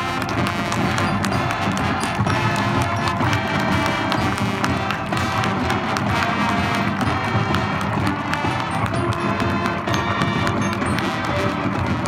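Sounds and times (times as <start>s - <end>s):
marching band playing: 0.0s - 12.0s.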